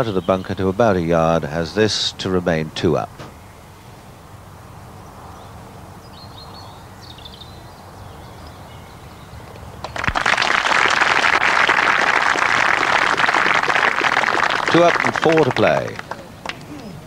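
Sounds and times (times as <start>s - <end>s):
faint birdsong: 0.0s - 10.1s
crowd applause: 9.8s - 16.9s.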